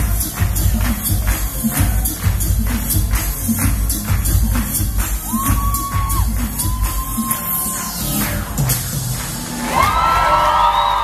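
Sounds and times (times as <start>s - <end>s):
funk dance track with heavy bass: 0.0s - 9.5s
crowd cheering: 9.4s - 11.0s.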